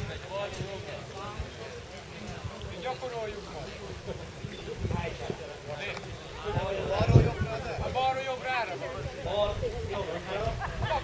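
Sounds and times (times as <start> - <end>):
distant people talking: 0.0 - 11.0.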